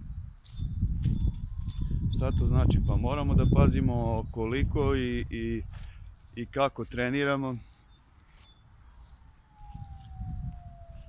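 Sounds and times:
wind rumbling on microphone: 0:00.0 - 0:06.6, 0:08.7 - 0:11.0.

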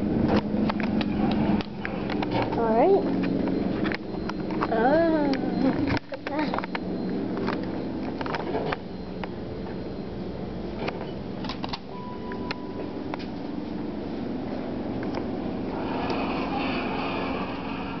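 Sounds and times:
steady hum: 0:00.0 - 0:18.0
short steady beep: 0:02.7 - 0:13.1
elevator doors sliding shut: 0:15.5 - 0:18.0.

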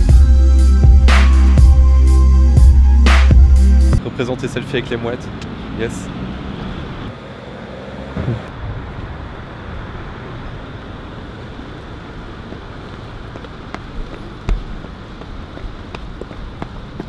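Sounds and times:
traffic noise: 0:04.0 - 0:17.0.

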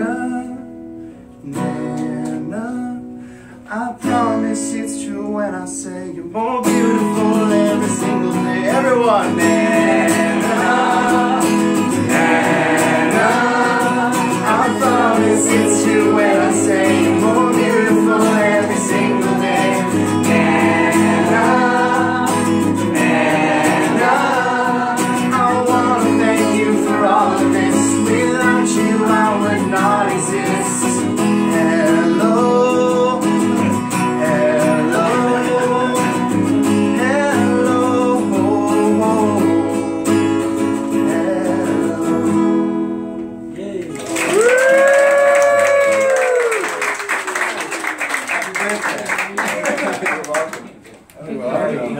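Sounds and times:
acoustic guitar strumming: 0:00.0 - 0:05.8, 0:06.4 - 0:43.6
group of voices singing: 0:08.7 - 0:42.8.

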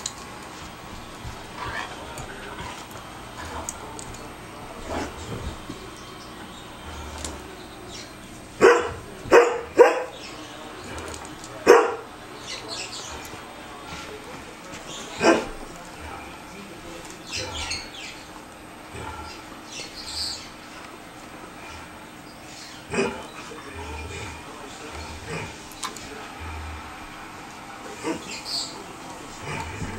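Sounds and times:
dog growling: 0:00.6 - 0:16.5, 0:17.2 - 0:18.2, 0:18.8 - 0:20.8, 0:21.4 - 0:29.9.

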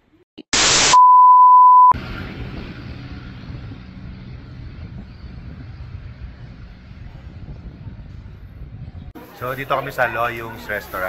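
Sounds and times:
highway traffic rumble: 0:02.0 - 0:11.0.

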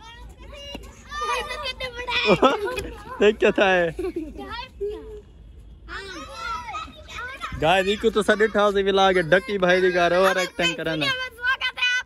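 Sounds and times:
children shouting as they play: 0:00.0 - 0:03.3, 0:05.9 - 0:12.0.

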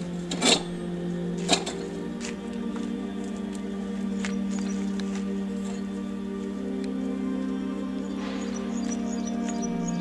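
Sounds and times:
background music: 0:00.0 - 0:10.0
hand pump handle clanking: 0:00.2 - 0:00.8, 0:01.4 - 0:02.0.

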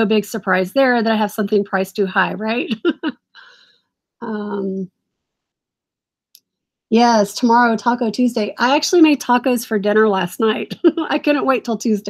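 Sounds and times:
woman's voice: 0:00.0 - 0:03.6, 0:04.2 - 0:04.9, 0:06.9 - 0:12.0.

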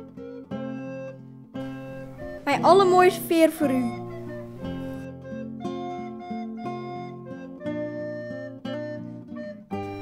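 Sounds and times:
plucked acoustic guitar music: 0:00.0 - 0:10.0.

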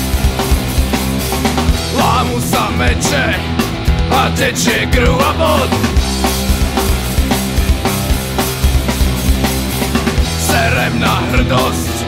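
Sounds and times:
bass guitar: 0:00.0 - 0:12.0
distorted electric guitars: 0:00.0 - 0:12.0
drum kit beat: 0:00.0 - 0:12.0.

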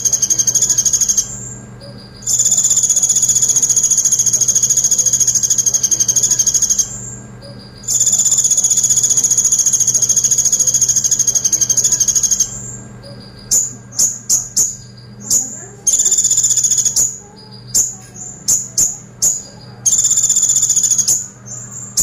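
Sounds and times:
bird chirps: 0:00.0 - 0:22.0
bird trilling: 0:00.0 - 0:22.0.

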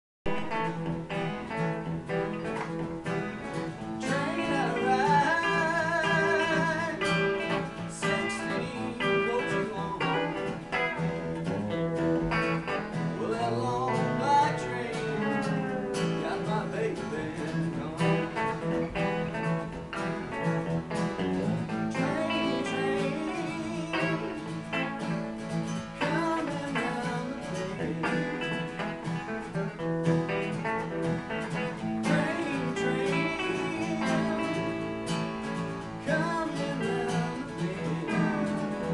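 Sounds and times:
strummed acoustic guitar: 0:00.3 - 0:38.9
twangy electric guitar lead: 0:00.3 - 0:38.9.

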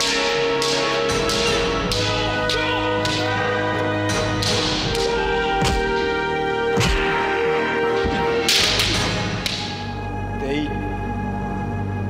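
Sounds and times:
bamboo swords swishing and clashing: 0:00.0 - 0:06.1, 0:08.0 - 0:09.8
background music with held tones: 0:00.0 - 0:12.0.

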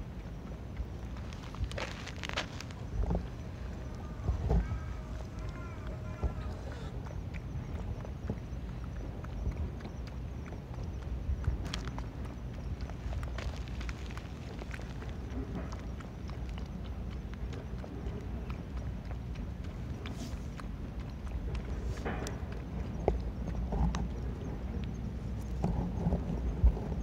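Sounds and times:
animal lapping water: 0:00.0 - 0:27.0.

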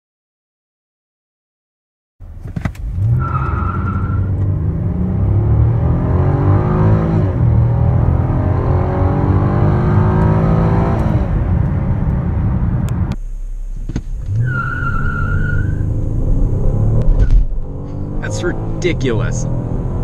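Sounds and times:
car engine at full throttle: 0:02.2 - 0:20.0
tires squealing: 0:02.4 - 0:04.7, 0:14.2 - 0:19.5.

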